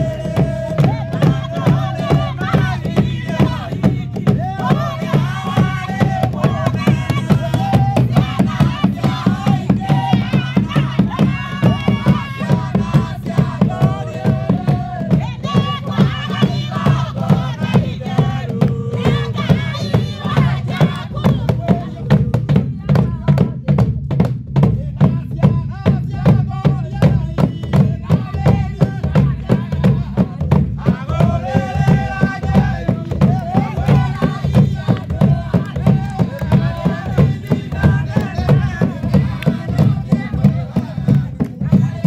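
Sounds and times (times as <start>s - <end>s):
group singing a hymn: 0.0s - 23.1s, 24.9s - 42.0s.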